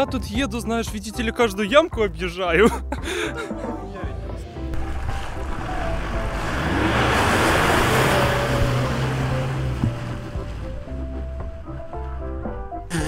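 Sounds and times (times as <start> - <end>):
background music: 0.0 - 13.0
pickup truck driving past: 4.1 - 12.9
tyres on slushy mud: 4.7 - 13.0.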